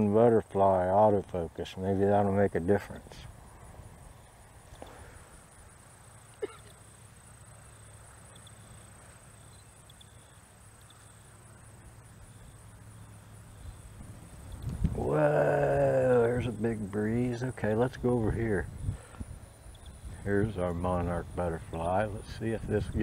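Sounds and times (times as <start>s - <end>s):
wind rumbling on microphone: 13.6s - 23.0s.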